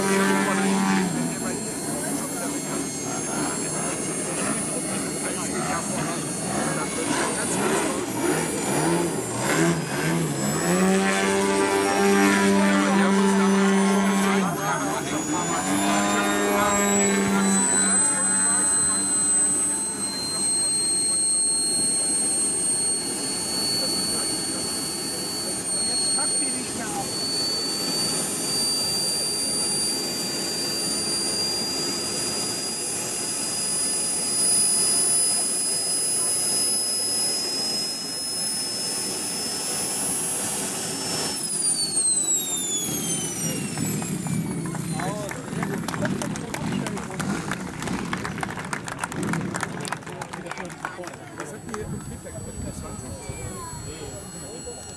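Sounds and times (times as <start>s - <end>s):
high engine whine: 0.0s - 54.9s
model aircraft propeller drone: 0.0s - 54.9s.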